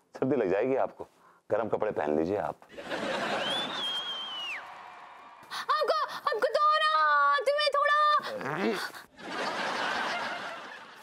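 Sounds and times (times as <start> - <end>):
canned audience laughter: 9.2 - 11.0.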